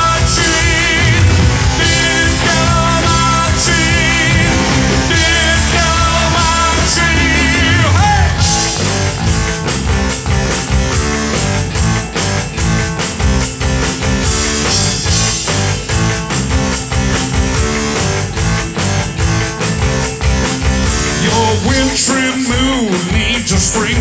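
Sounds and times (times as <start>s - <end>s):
drum-kit beat: 0.0s - 24.0s
electric guitar: 0.0s - 24.0s.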